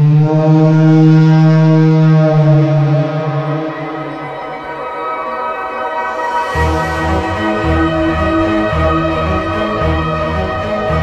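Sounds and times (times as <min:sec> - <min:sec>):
low synthesized brassy tone: 0:00.0 - 0:11.0.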